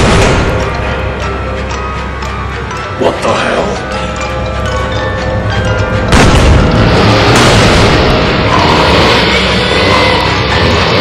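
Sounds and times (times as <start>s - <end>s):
film soundtrack music: 0.0s - 11.0s
loud boom: 6.1s - 8.6s.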